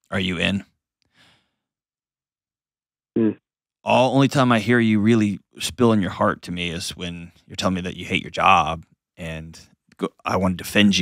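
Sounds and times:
faint breath into microphone: 0:01.1 - 0:01.7.

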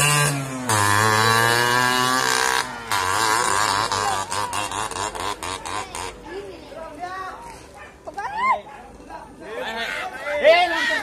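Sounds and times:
motorcycle engine revving: 0:00.0 - 0:06.5.

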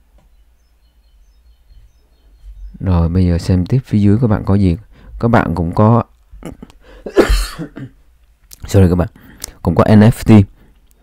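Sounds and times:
man coughing: 0:06.4 - 0:08.0.

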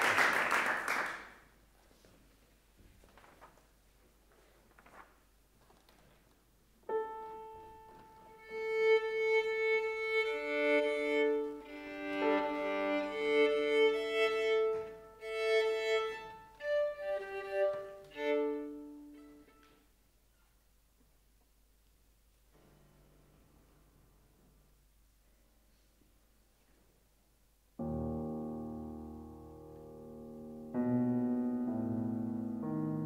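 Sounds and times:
violin bowing open strings: 0:07.4 - 0:19.8.

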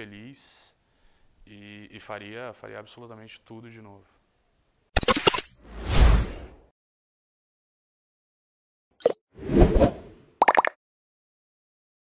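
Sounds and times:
quick swish: 0:09.4 - 0:10.2.

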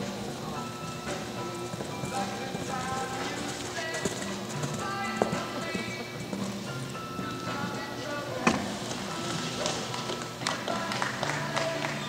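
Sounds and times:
horse hoofbeats on dirt: 0:00.0 - 0:08.1
music playing: 0:00.0 - 0:12.0.

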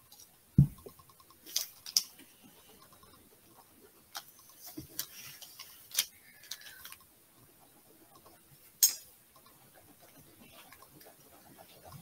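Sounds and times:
light irregular clicks and taps: 0:00.0 - 0:12.0.

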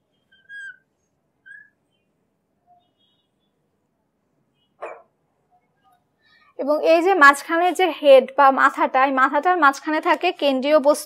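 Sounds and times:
marker squeaking on glass: 0:00.2 - 0:02.1, 0:04.6 - 0:05.1.

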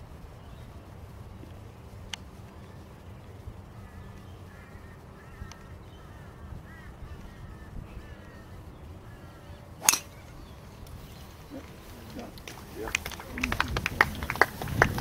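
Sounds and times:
faint bird calling: 0:03.7 - 0:12.3
golf ball struck by driver: 0:09.8 - 0:10.2.

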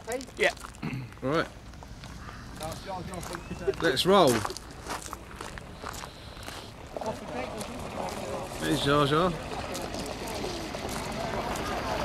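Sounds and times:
faint voices: 0:02.2 - 0:12.0.

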